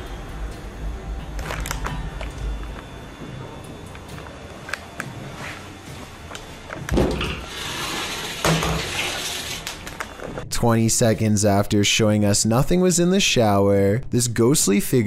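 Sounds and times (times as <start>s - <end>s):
low drone: 0.0s - 8.4s.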